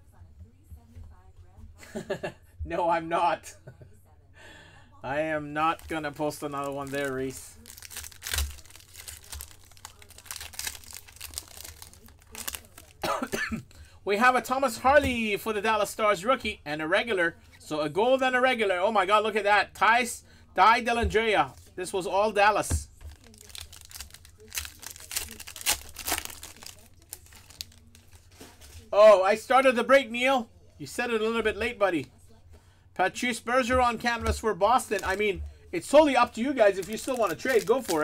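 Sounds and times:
foil wrapper crinkling and tearing: 5.7 - 13.1, 23.1 - 28.8, 34.7 - 38.0.

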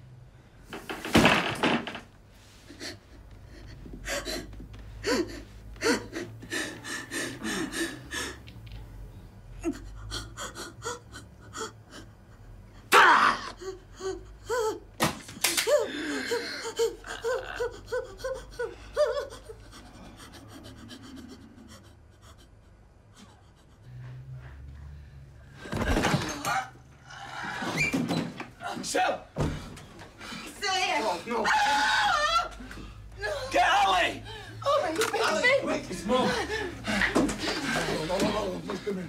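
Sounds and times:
woman panting and gasping: 2.7 - 8.5, 9.6 - 12.9, 15.7 - 23.9
woman whimpering moans: 9.6 - 12.3, 15.7 - 22.5.

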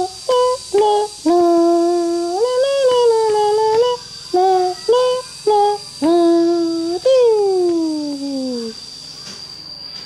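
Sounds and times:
person humming: 0.0 - 8.8.

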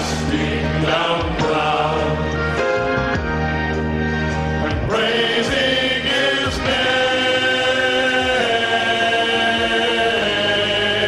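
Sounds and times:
male vocal ensemble singing chords: 0.0 - 3.5, 4.3 - 11.0.

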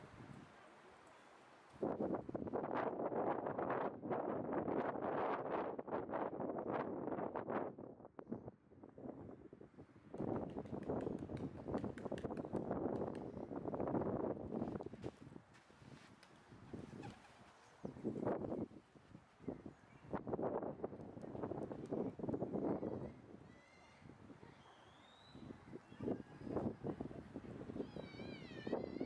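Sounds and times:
wind buffeting microphone: 1.8 - 24.7, 25.3 - 29.0.

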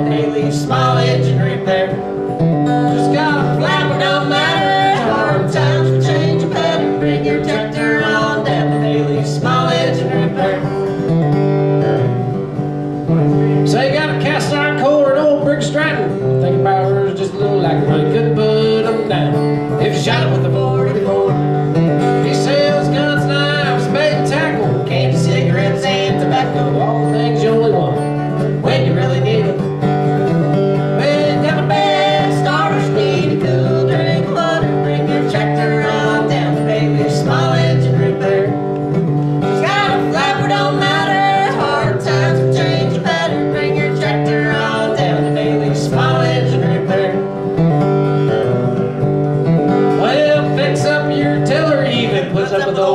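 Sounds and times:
person singing: 0.0 - 11.0, 13.3 - 29.7, 30.9 - 38.8, 39.4 - 47.6, 50.0 - 52.9
acoustic guitar country song: 0.0 - 52.9.

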